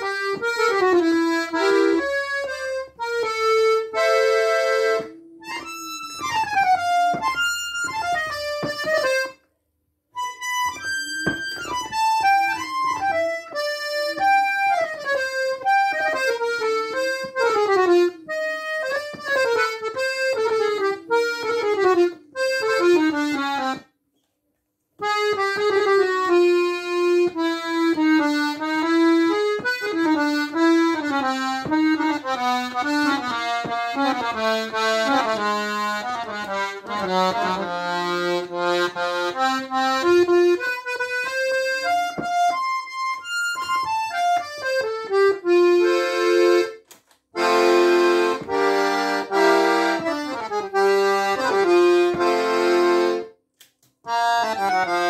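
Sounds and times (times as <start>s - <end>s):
accordion runs of notes: 0.0s - 9.4s, 10.2s - 23.8s, 25.0s - 46.8s, 47.4s - 53.4s, 54.1s - 55.0s.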